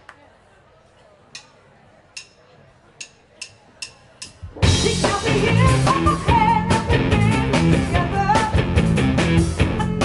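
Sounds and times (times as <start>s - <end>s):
drumsticks clicking together: 1.4s - 1.6s, 2.2s - 2.4s.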